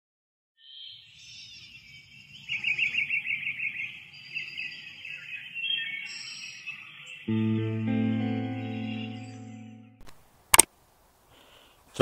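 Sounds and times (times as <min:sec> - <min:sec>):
birds singing: 0:00.6 - 0:10.0.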